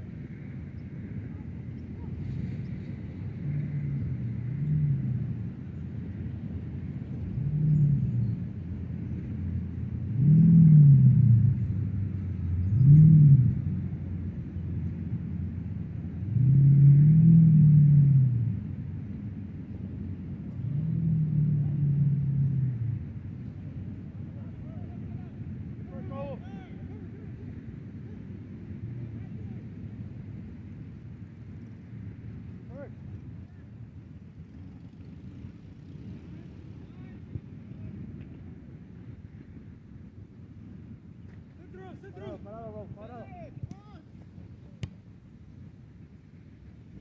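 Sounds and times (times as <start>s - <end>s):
vehicle engines droning past: 0.0s - 43.1s
steady low rumble: 0.0s - 47.0s.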